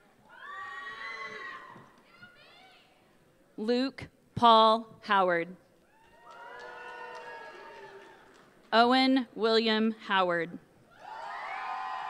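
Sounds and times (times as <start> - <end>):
high-pitched whooping cheer: 0.2 - 2.0, 5.9 - 8.4, 10.9 - 12.0.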